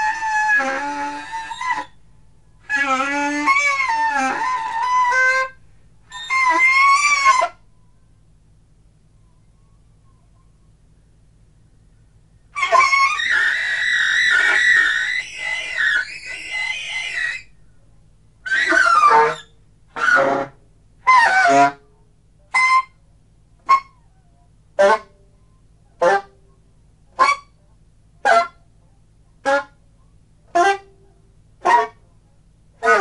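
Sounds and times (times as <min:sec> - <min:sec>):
alto saxophone improvising: 0:00.0 - 0:07.7, 0:12.5 - 0:17.6, 0:18.4 - 0:23.0, 0:23.6 - 0:26.5, 0:27.1 - 0:27.6, 0:29.4 - 0:29.9, 0:30.5 - 0:32.0, 0:32.8 - 0:33.0.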